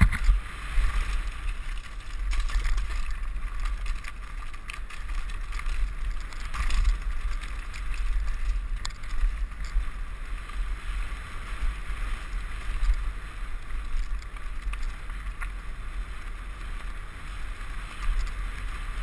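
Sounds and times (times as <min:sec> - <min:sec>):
bike clicking and rattling: 0:00.0 - 0:19.0
deep wind rumble on microphone: 0:00.0 - 0:19.0
tyres hissing on dirt and gravel: 0:00.0 - 0:19.0.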